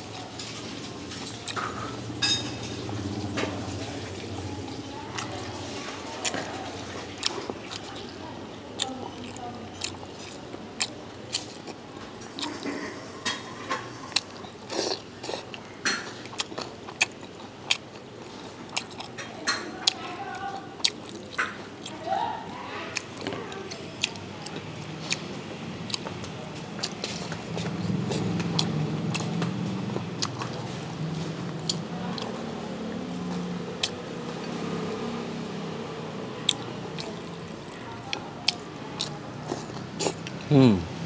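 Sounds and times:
low background hum: 0:00.0 - 0:41.0.

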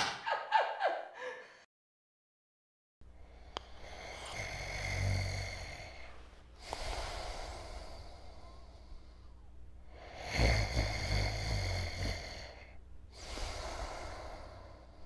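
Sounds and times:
man snoring: 0:03.7 - 0:08.4, 0:09.9 - 0:14.9.

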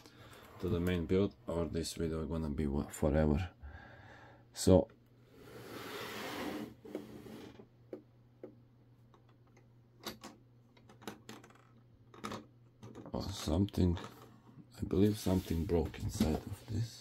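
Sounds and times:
plastic model scraping on table: 0:05.4 - 0:07.6.

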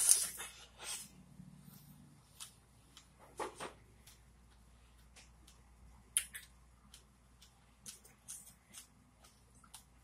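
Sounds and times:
person chewing with wet clicks: 0:02.3 - 0:03.2, 0:03.9 - 0:10.0
lip smacks: 0:05.5 - 0:10.0.

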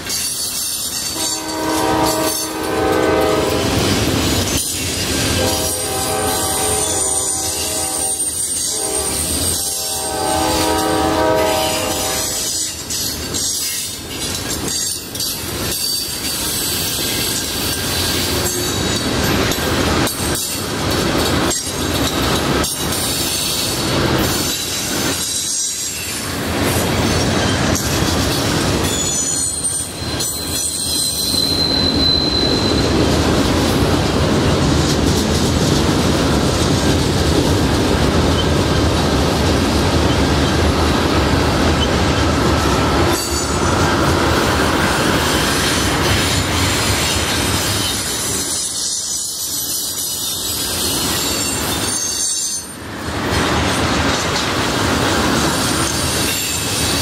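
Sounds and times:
train wheels rumbling on rails: 0:00.0 - 0:57.0
train horn chord: 0:01.2 - 0:03.7, 0:05.3 - 0:12.6
high-pitched wheel squeals: 0:28.8 - 0:33.0, 0:47.1 - 0:52.8.

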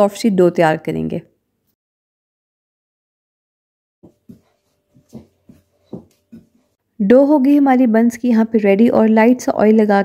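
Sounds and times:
hands kneading bread dough: 0:04.1 - 0:06.8.

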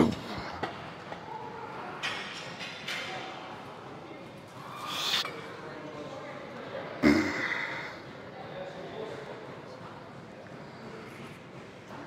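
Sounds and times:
gym room noise: 0:00.0 - 0:12.0.

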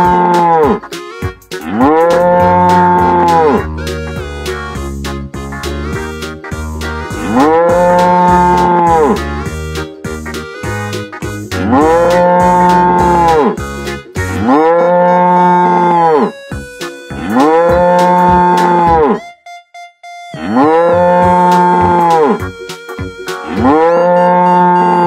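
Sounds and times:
cow mooing: 0:00.0 - 0:00.8, 0:01.6 - 0:03.7, 0:07.2 - 0:09.2, 0:11.6 - 0:13.6, 0:14.3 - 0:16.4, 0:17.2 - 0:19.2, 0:20.4 - 0:22.5, 0:23.5 - 0:25.0
snatches of music: 0:00.0 - 0:14.6, 0:21.2 - 0:23.7.

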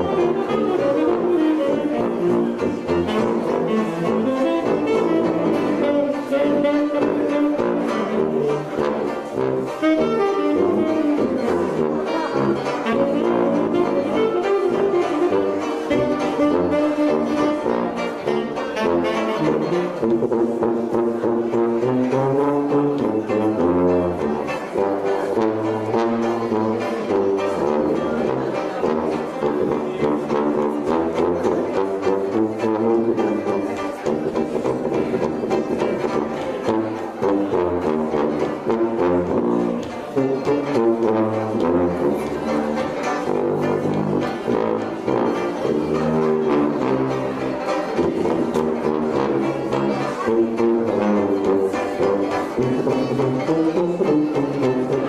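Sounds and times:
jazz band horns: 0:00.0 - 0:55.0.

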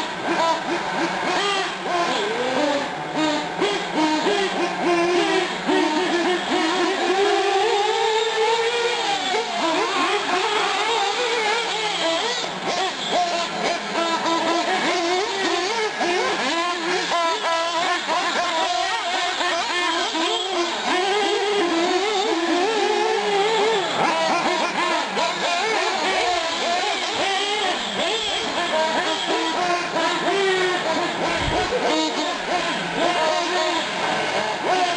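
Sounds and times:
model car engines whining: 0:00.0 - 0:34.9.

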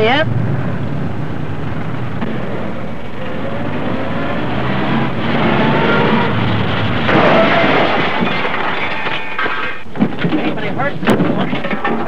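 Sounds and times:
car engine running: 0:00.0 - 0:07.1
road noise: 0:00.0 - 0:11.2.

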